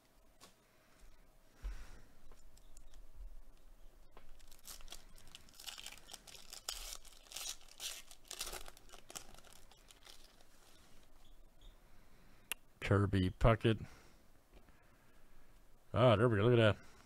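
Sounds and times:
foil pack torn and crinkled: 4.3 - 10.7.

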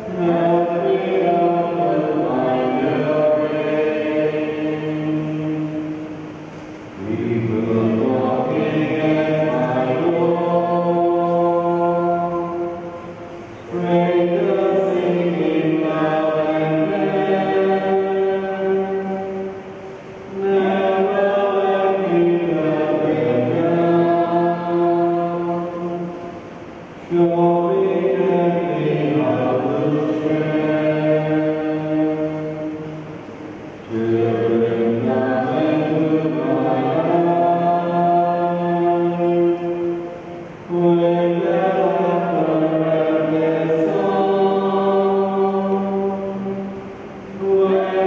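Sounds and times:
voices singing a hymn: 0.0 - 48.0.

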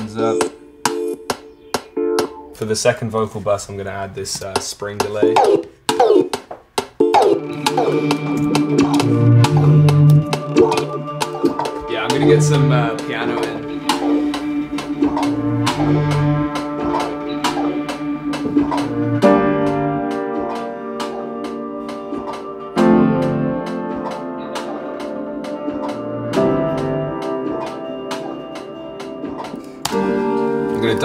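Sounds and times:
playback beat with steady tick: 0.0 - 2.8, 3.8 - 31.0
piano playing slow chords: 7.0 - 31.0.

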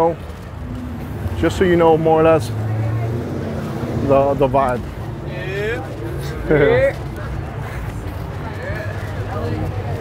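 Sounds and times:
traffic rumble: 0.0 - 10.0
voices of passers-by: 0.0 - 10.0.

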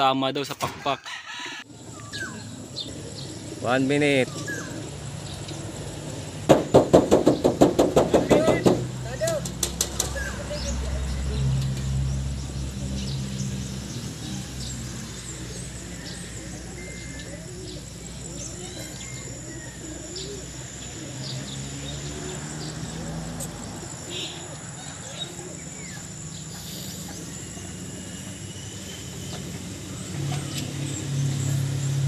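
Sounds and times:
pigeon wings clattering: 6.6 - 10.3.

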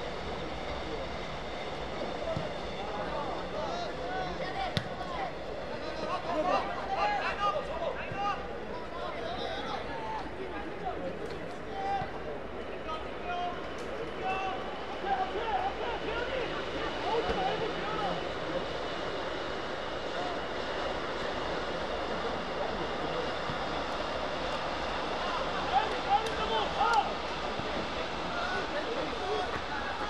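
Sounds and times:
loud shouts: 25.2 - 27.2.

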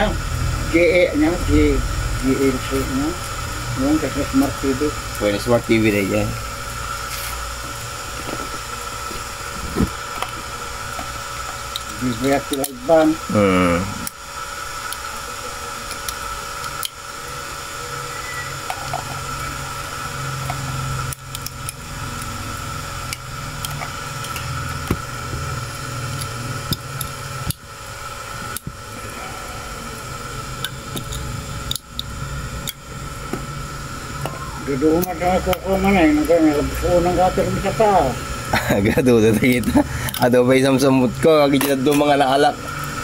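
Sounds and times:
faint whine: 0.0 - 43.0
low hum: 0.0 - 43.0
radio static hiss: 0.0 - 43.0.

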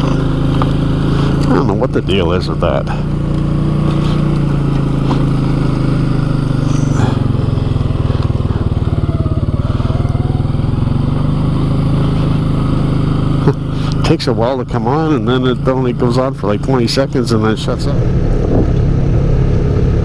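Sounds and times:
atv engine running: 0.0 - 20.0.

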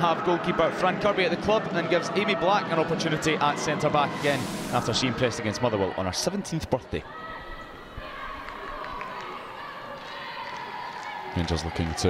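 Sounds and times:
steady background hush: 0.0 - 6.0.

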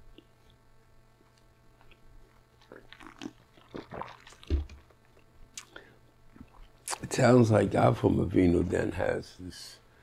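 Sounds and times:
person sipping and swallowing: 1.8 - 7.0.

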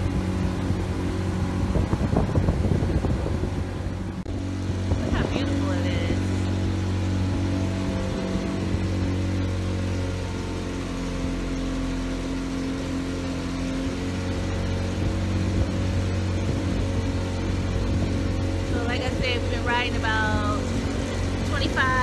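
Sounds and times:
wind noise: 0.0 - 9.1
motor boat engine droning: 0.0 - 22.0
water noise: 0.0 - 22.0.

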